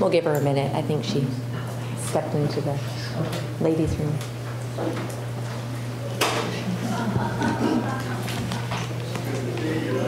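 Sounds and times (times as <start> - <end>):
low electrical hum: 0.0 - 10.0
background talk: 5.9 - 10.0.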